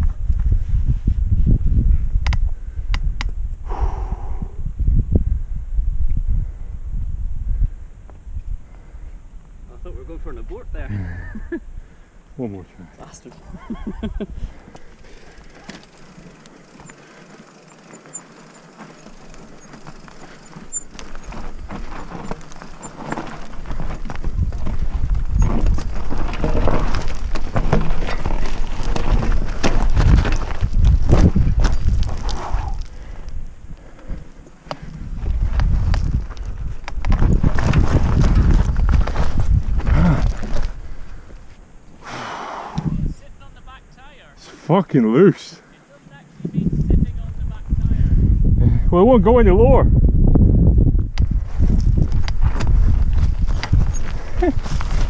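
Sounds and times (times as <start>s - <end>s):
bike tyres and frame rattling: 13.4s - 42.0s, 50.0s - 55.0s.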